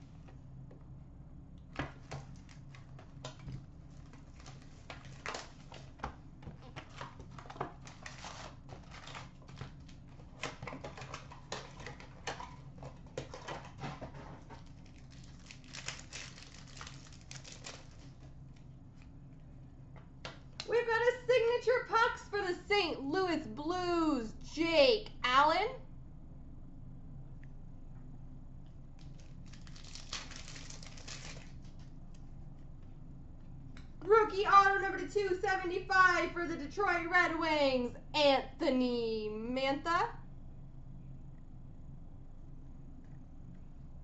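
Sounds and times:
low steady hum: 0:00.0 - 0:44.0
plastic wrapping crinkling and tearing: 0:02.0 - 0:13.8, 0:14.5 - 0:18.3, 0:29.0 - 0:31.9.

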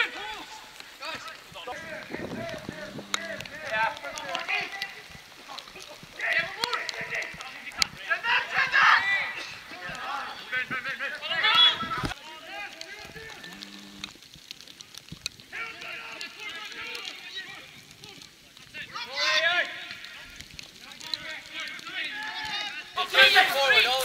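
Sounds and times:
players shouting: 0:06.2 - 0:14.0, 0:20.9 - 0:24.0.

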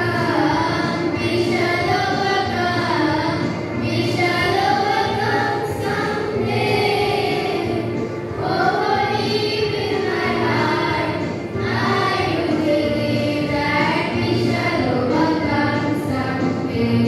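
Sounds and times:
girls choir singing: 0:00.0 - 0:17.0.

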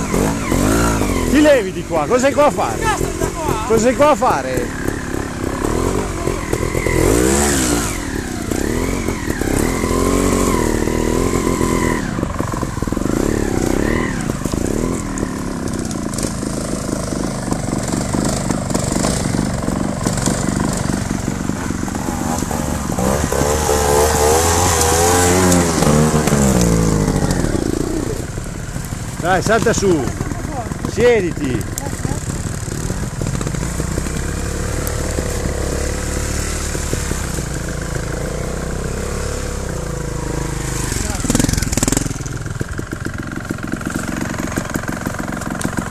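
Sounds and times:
motorcycle engine revving: 0:00.0 - 0:45.9.

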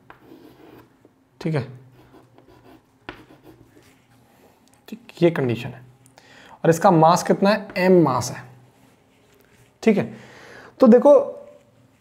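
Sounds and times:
chalk scratching on chalkboard: 0:00.0 - 0:00.9, 0:01.9 - 0:04.1.

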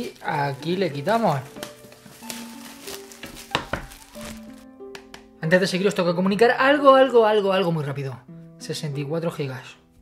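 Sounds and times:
plastic shrink-wrap crinkling: 0:00.0 - 0:04.7
soft background music: 0:00.0 - 0:10.0.

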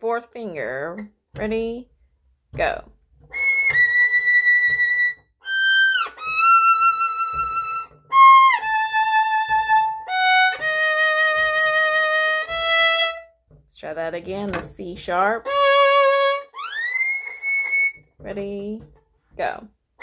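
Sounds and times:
solo violin slow passage: 0:03.3 - 0:13.4, 0:15.0 - 0:18.0.

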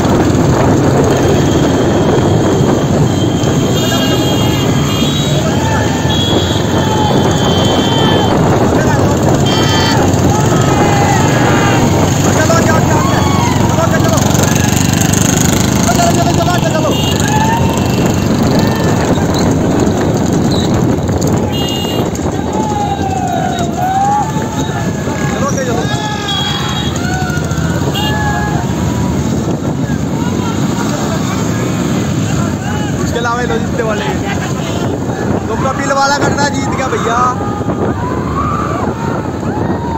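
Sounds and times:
motorcycle engines running: 0:00.0 - 0:39.9
steady rushing noise: 0:00.0 - 0:39.9
men shouting: 0:03.7 - 0:19.2, 0:22.2 - 0:39.9.

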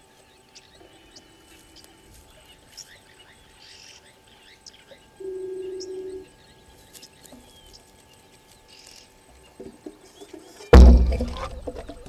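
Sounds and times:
steady hum: 0:00.0 - 0:12.0
faint bird chirps: 0:00.4 - 0:12.0.

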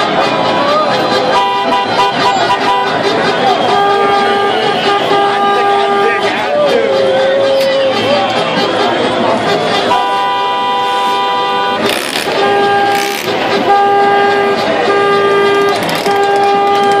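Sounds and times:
car horn honking: 0:00.0 - 0:17.0
crowd talking and shouting: 0:00.0 - 0:17.0.

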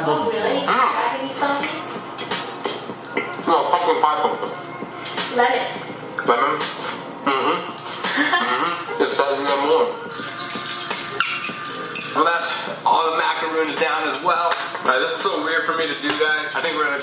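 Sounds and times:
man talking: 0:12.2 - 0:17.0.

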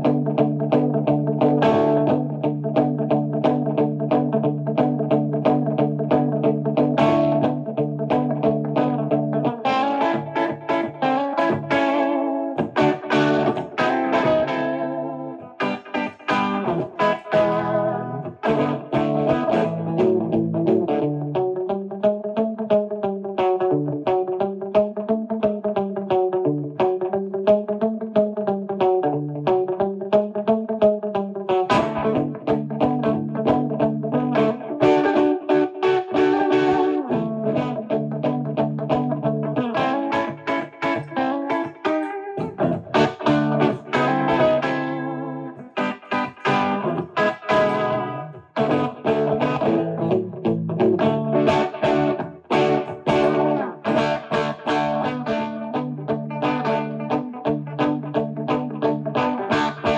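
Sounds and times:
electric guitar with slapback echo: 0:00.0 - 0:59.9.

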